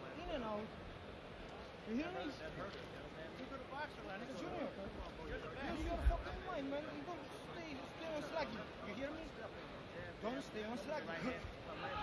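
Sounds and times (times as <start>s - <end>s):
arena crowd noise: 0.0s - 12.0s
man shouting: 11.2s - 12.0s
people yelling: 11.4s - 12.0s.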